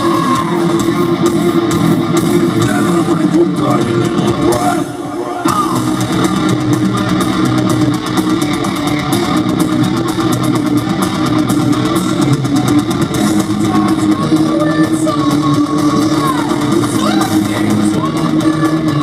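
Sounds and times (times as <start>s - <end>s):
bass guitar: 0.0s - 19.0s
drums: 0.0s - 19.0s
electric guitars: 0.0s - 19.0s.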